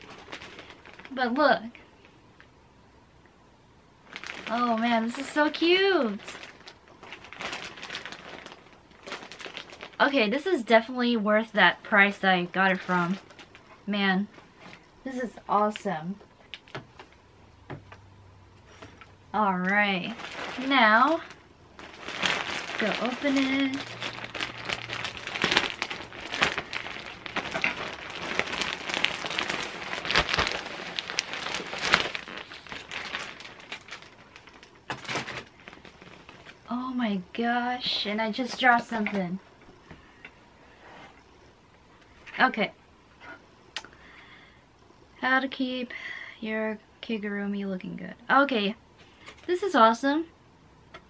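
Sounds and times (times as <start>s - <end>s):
plastic bag crinkling: 0.0s - 2.1s, 4.0s - 15.8s, 18.6s - 39.2s.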